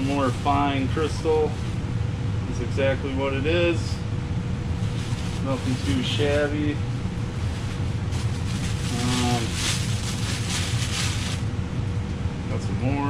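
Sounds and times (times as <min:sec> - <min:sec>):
steady low rumble: 0:00.0 - 0:13.0
packing paper crinkling: 0:04.8 - 0:06.4, 0:07.2 - 0:11.5.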